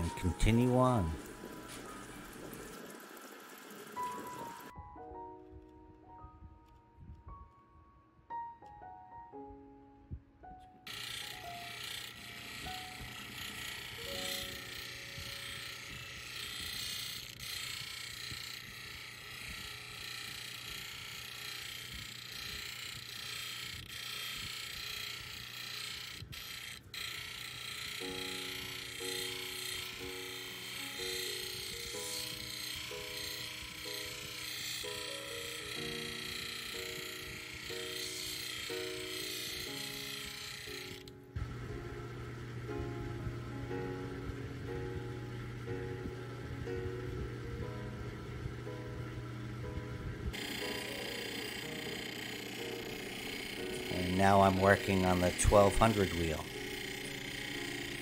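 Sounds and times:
grinding wheel hissing: 0.0 - 4.7, 10.9 - 42.4, 50.3 - 58.0
low motor hum: 0.0 - 4.7, 39.2 - 58.0
piano-like background music: 0.0 - 20.2, 27.8 - 58.0.

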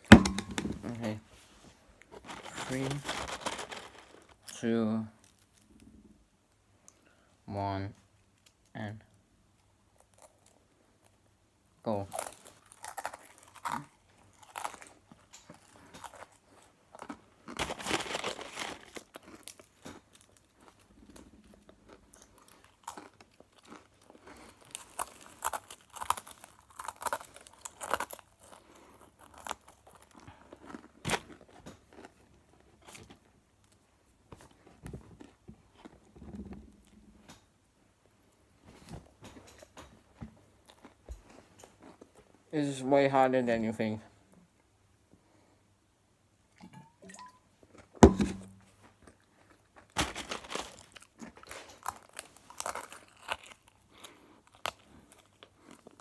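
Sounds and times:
pretzel sticks crunching: 2.1 - 4.6, 11.9 - 20.8, 22.2 - 32.1, 49.4 - 56.0.

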